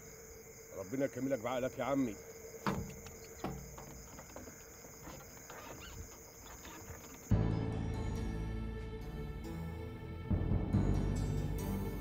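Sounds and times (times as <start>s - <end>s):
crickets chirring: 0.0s - 7.3s.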